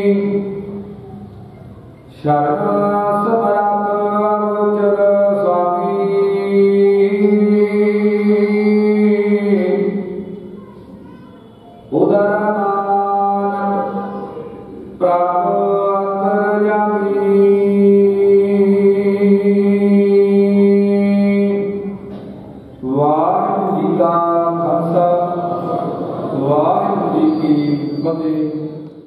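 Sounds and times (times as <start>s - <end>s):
man chanting held notes: 0.0s - 22.1s, 22.8s - 29.0s.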